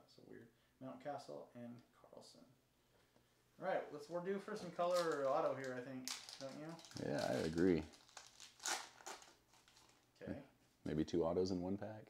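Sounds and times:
foil wrapper crinkling: 4.6 - 10.0.

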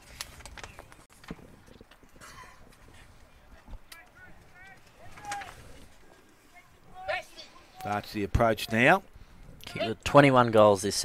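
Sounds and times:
distant voices shouting: 3.5 - 7.9
man speaking: 6.4 - 9.1.

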